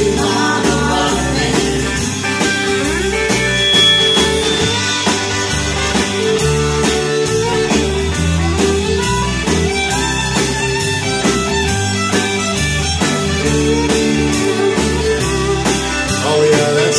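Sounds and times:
electric guitar: 0.0 - 16.9
live band instrumental: 0.0 - 16.9.

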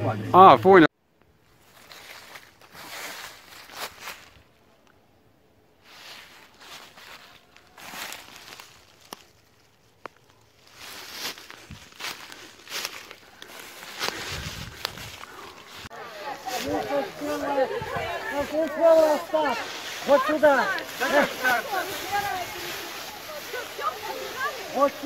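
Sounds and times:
footsteps through fallen leaves: 1.5 - 4.6, 5.8 - 25.0.

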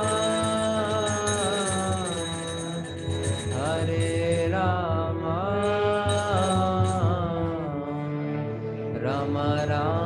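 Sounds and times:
person singing a devotional chant: 0.0 - 10.0
sustained musical accompaniment: 0.0 - 10.0.

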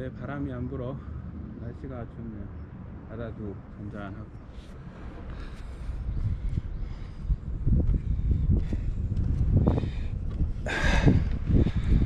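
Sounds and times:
footsteps on wooden boards: 7.8 - 10.6.

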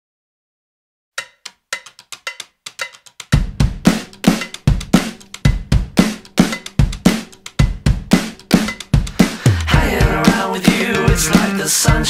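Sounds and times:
drum kit with heavy bass drum: 1.2 - 12.0.

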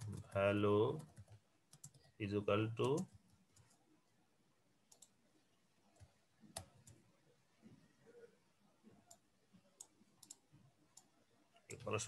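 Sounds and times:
keyboard and mouse clicks: 4.9 - 5.2, 9.8 - 10.4.

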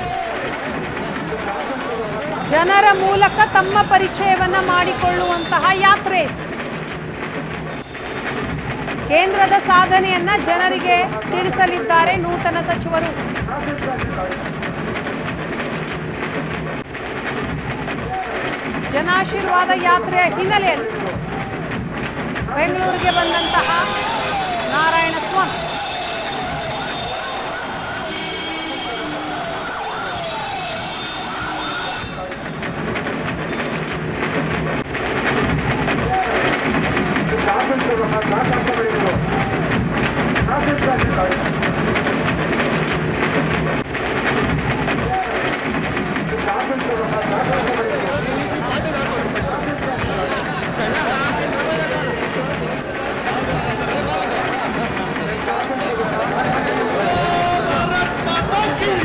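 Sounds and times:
crowd noise: 0.0 - 59.0
procession drums beating: 0.0 - 59.0
vehicle siren wailing: 22.8 - 32.9, 47.1 - 59.0.

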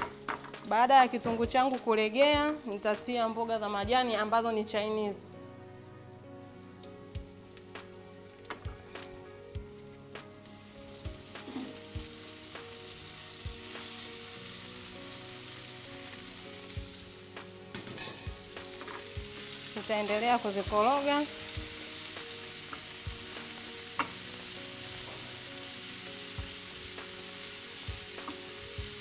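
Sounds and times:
onions frying in hot oil: 0.0 - 4.3, 6.5 - 29.0
greens sizzling in oil: 0.0 - 29.0.

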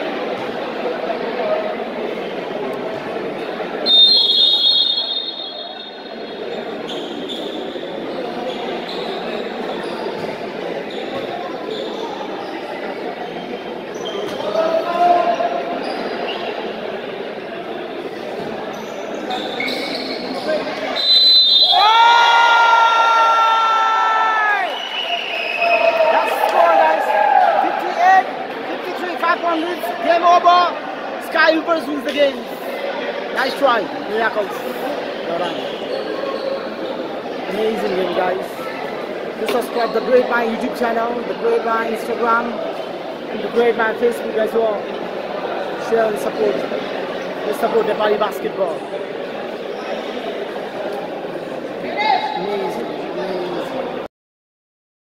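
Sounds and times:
crowd chatter: 0.0 - 54.1
shrill referee's whistle: 3.8 - 6.2, 19.3 - 22.2, 24.7 - 26.0.

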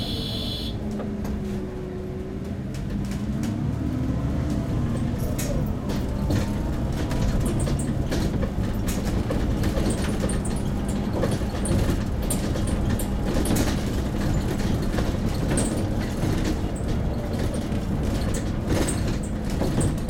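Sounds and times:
bus engine and road rumble: 0.0 - 20.0
cabin rattles and clicks: 5.0 - 20.0.

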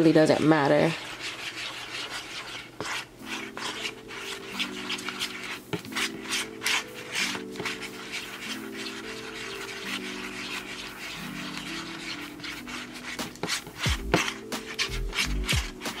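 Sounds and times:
utensil scraping container: 0.2 - 16.0
soft background music chords: 2.8 - 16.0.

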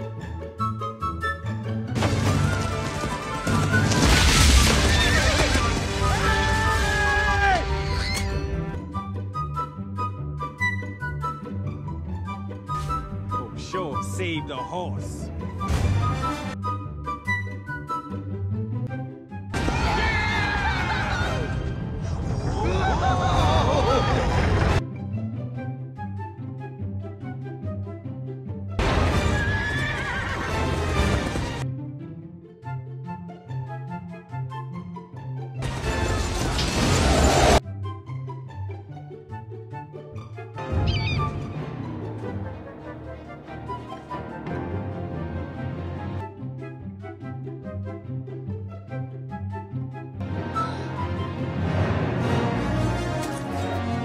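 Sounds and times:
film music: 0.0 - 54.0
horse whinnying: 7.6 - 8.5, 29.2 - 30.8, 40.7 - 41.7.

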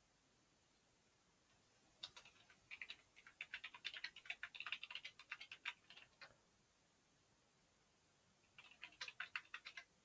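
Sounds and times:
computer keyboard typing: 2.0 - 6.3, 8.5 - 10.0.

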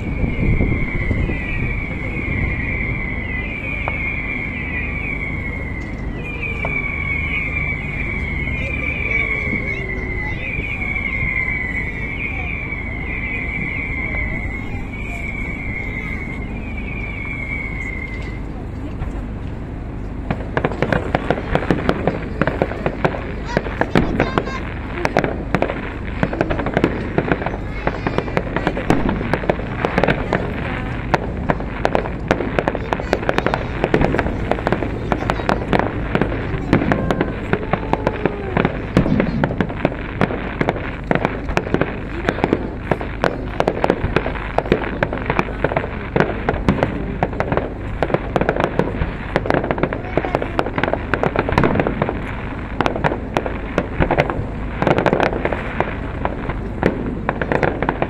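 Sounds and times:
fireworks shells bursting: 20.2 - 58.0.

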